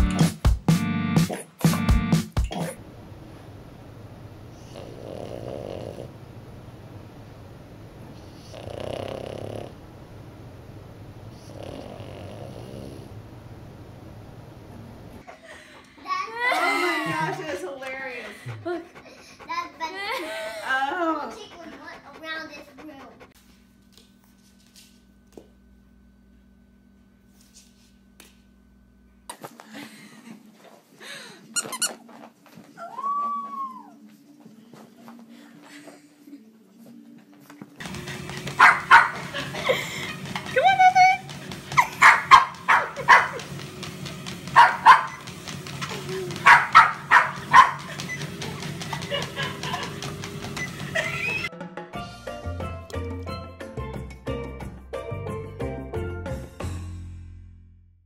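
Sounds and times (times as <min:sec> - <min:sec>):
puppy snoring: 0:04.5 - 0:06.3, 0:08.2 - 0:09.9, 0:11.3 - 0:13.2
puppy whining: 0:32.6 - 0:34.1, 0:41.7 - 0:43.5, 0:44.5 - 0:51.5.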